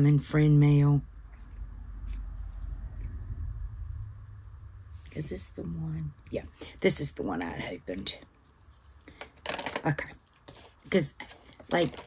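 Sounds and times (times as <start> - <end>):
faint clicks and rustles: 7.8 - 12.0.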